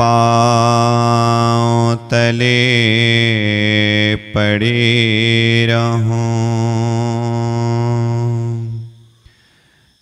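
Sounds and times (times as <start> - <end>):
man chanting: 0.0 - 9.0.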